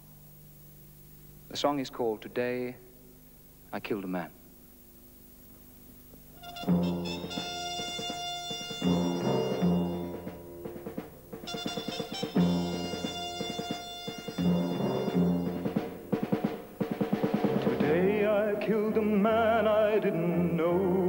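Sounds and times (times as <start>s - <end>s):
drums: 6.1s - 21.0s
quick run of drum strokes: 6.4s - 18.2s
brass: 6.4s - 18.6s
timpani: 6.4s - 19.0s.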